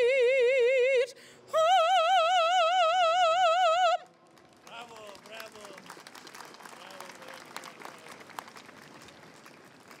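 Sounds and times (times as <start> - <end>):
crowd applauding: 4.2 - 10.0.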